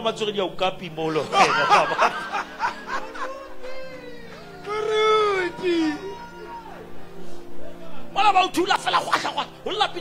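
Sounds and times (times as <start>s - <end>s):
man speaking: 3.0s - 6.3s.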